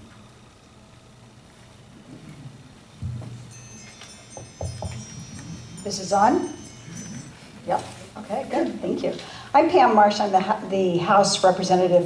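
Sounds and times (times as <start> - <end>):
faint high ringing tones: 0.0 - 1.9, 2.5 - 10.0
knocks and thumps: 3.0 - 3.4, 4.4 - 5.1.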